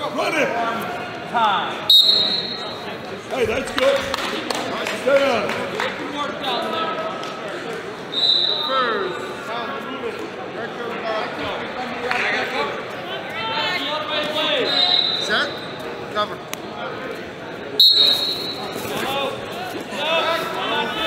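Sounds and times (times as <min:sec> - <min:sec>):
people calling and chatter: 0:00.0 - 0:21.0
shrill whistle blasts: 0:01.9 - 0:02.7, 0:08.1 - 0:08.9, 0:14.6 - 0:15.8, 0:17.8 - 0:18.8.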